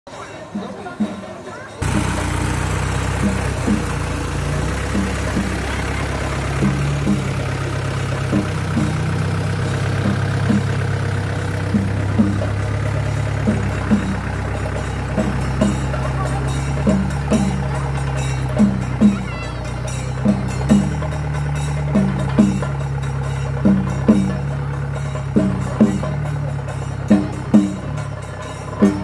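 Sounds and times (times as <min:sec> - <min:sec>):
petrol generator humming: 0:01.8 - 0:29.0.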